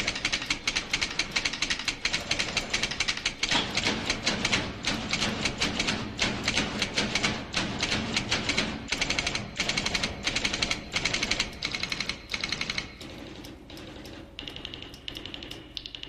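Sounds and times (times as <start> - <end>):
manual typewriter typing: 0.0 - 16.0.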